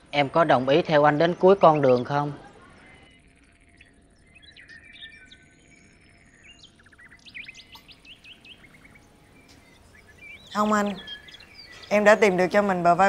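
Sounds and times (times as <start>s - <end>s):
low steady hiss: 0.0s - 13.0s
birds chirping and whistling: 1.1s - 13.0s.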